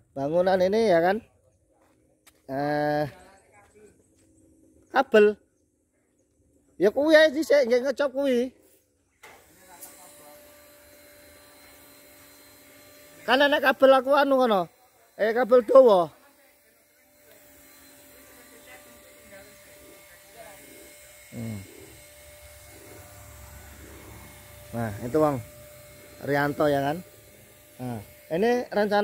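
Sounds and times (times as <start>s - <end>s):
small electric machine humming: 0.0s - 29.0s
thin constant whine: 0.0s - 29.0s.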